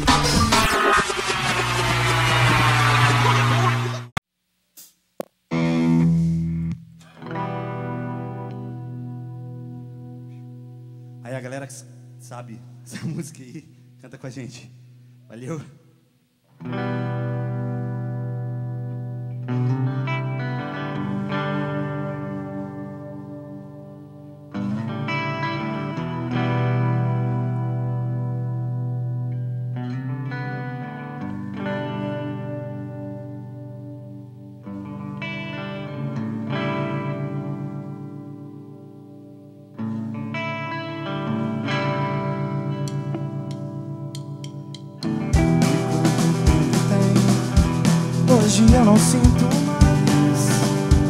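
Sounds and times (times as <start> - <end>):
electric guitar chords ringing: 5.5 - 12.3, 16.6 - 51.0
rock band with drums: 41.8 - 51.0.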